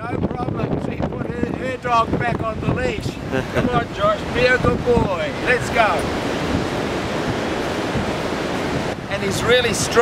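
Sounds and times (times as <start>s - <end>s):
surf breaking on beach: 0.0s - 10.0s
wind rumbling on microphone: 0.0s - 10.0s.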